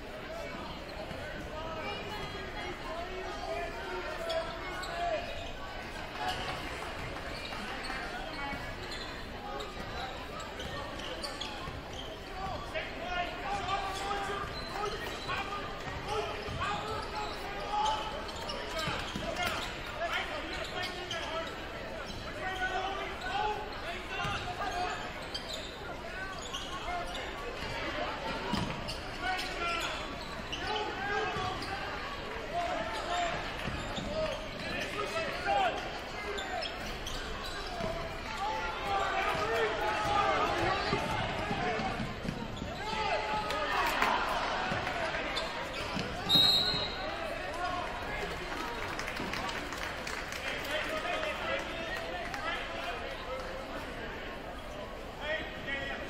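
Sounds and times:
crowd chatter: 0.0s - 56.0s.

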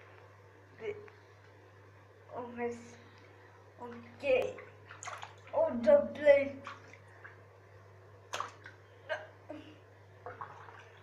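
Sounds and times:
water drips: 3.2s - 5.6s
hand splashing in bath water: 4.5s - 5.6s, 8.3s - 8.8s.

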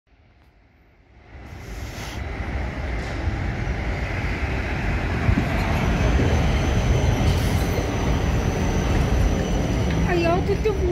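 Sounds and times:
tram rumbling past on rails: 0.2s - 10.9s.

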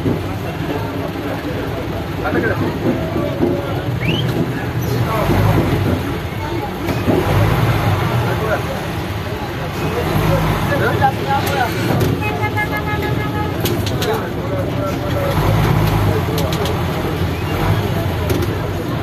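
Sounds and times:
minibus engine running: 0.0s - 19.0s
people's voices: 0.0s - 19.0s
vehicle horn: 12.1s - 13.9s.

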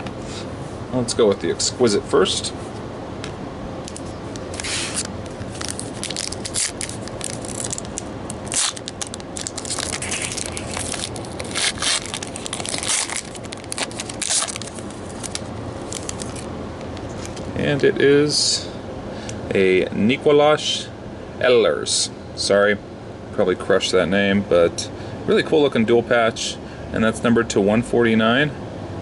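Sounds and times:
foil wrapper crinkling and tearing: 4.5s - 16.5s.

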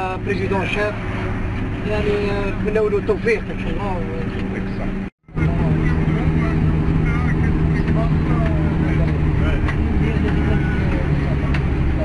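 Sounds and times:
road noise: 0.0s - 12.0s
vehicle engine drone: 0.0s - 12.0s.

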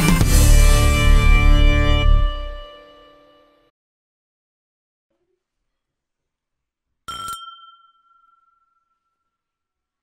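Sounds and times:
glasses clinking: 7.1s - 9.6s.

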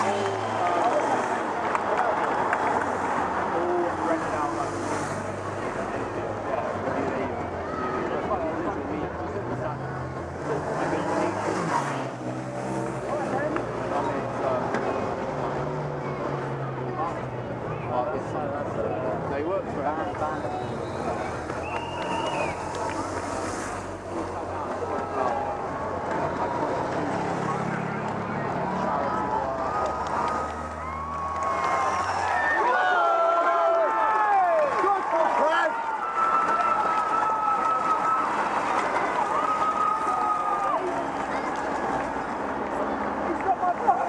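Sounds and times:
engine hum: 0.0s - 33.0s
spectators chattering: 0.0s - 44.0s
motorcycles riding past: 22.6s - 32.7s.

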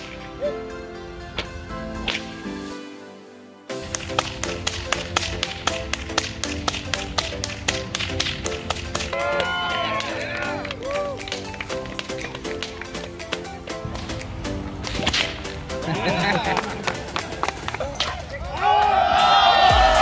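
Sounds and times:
whips cracking: 0.0s - 0.4s, 1.4s - 2.4s, 3.8s - 10.2s, 14.8s - 15.6s
upbeat background music: 0.0s - 20.0s.

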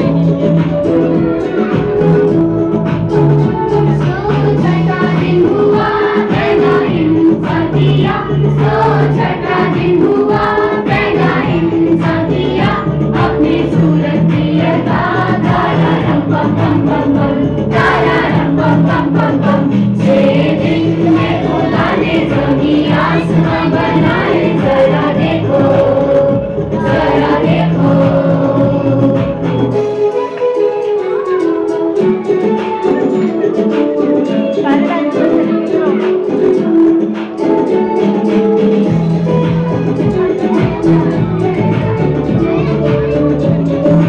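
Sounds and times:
group of voices singing: 0.0s - 30.2s
instrumental accompaniment with bass: 0.0s - 44.0s.

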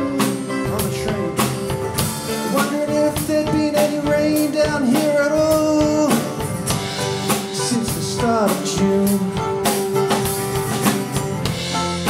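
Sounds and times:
drum kit: 0.0s - 12.0s
strummed acoustic guitar: 0.0s - 12.0s.

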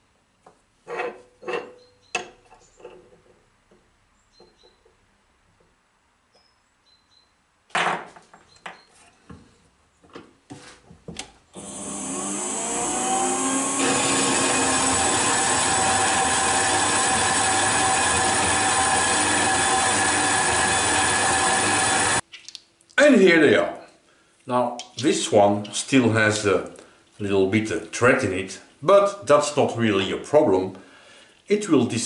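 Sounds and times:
bandsaw cutting metal: 11.6s - 22.2s.

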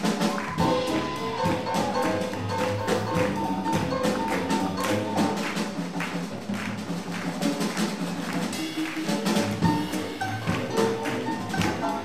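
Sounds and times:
swing jazz band playing: 0.0s - 12.0s.

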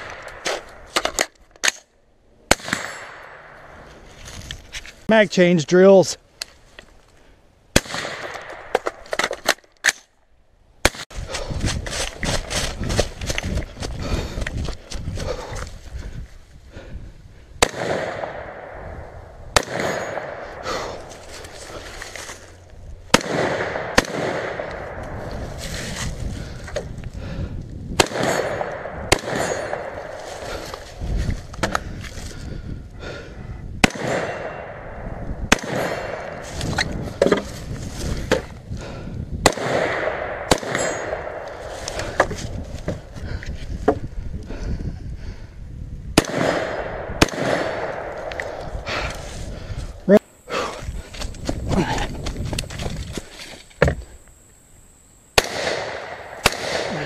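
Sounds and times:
rifle shots: 2.5s - 3.6s, 7.7s - 9.0s, 17.6s - 18.9s, 19.5s - 20.7s, 23.1s - 25.0s, 28.0s - 30.3s, 33.8s - 36.4s, 39.4s - 41.7s, 46.2s - 48.6s, 55.4s - 57.0s
running through dry leaves: 11.4s - 16.0s.

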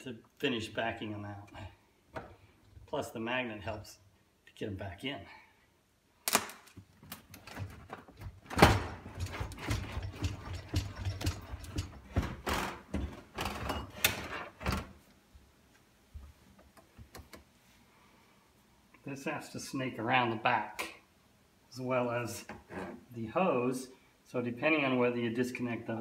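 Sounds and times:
dishwasher knocking and scraping: 7.5s - 14.9s.

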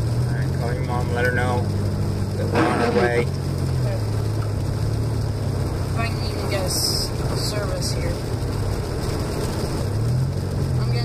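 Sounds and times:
car interior driving drone: 0.0s - 11.0s.

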